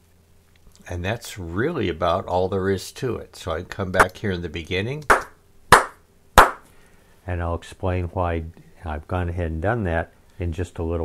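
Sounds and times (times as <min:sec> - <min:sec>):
sharp hand claps: 0:05.0 - 0:06.6.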